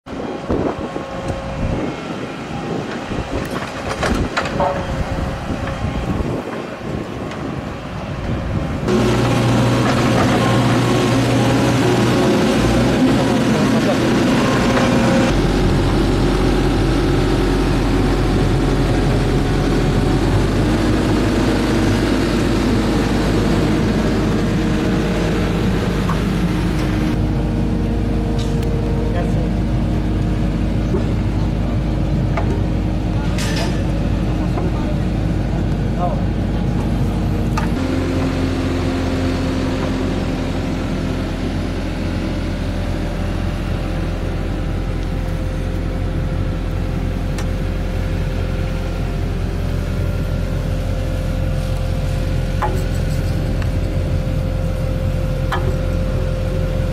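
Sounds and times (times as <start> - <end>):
heavy machine engine running: 0.1 - 56.9.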